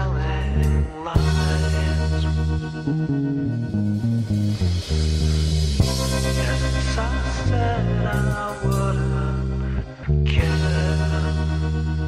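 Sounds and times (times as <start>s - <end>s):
bass guitar line: 0.0s - 12.0s
punk rock song: 0.0s - 12.0s.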